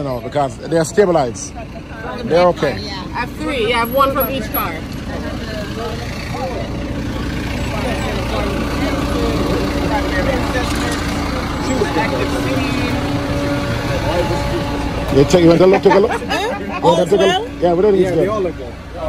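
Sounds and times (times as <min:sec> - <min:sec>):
bus engine idling: 0:00.0 - 0:19.0
people talking: 0:00.0 - 0:19.0.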